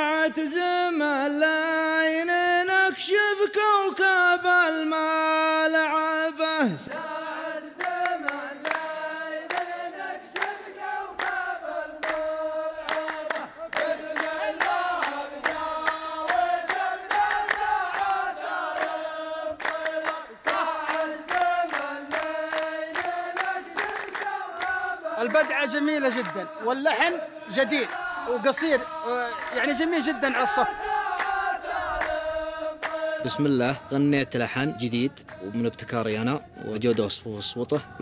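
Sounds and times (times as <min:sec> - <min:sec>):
men singing in unison: 0:00.0 - 0:38.0
handclaps: 0:06.9 - 0:26.8, 0:27.8 - 0:29.9, 0:30.8 - 0:33.2, 0:35.2 - 0:35.5.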